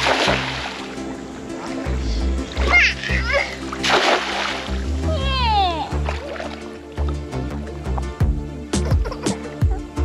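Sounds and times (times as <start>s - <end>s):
net splashing into water: 0.0s - 1.0s, 2.6s - 5.0s, 5.9s - 6.8s
background music with bass line: 0.0s - 10.0s.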